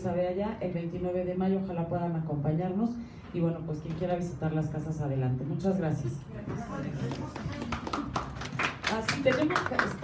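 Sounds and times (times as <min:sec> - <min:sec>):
audience applauding: 0:07.1 - 0:10.0.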